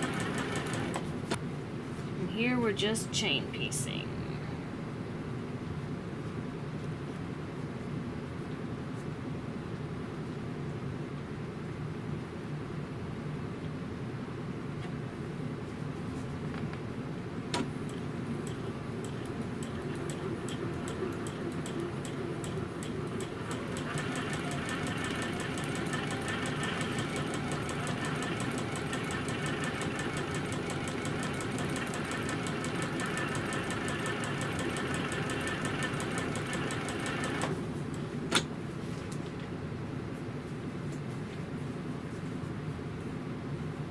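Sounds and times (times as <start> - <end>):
sewing machine stitching: 0.0 - 1.0, 19.0 - 37.6.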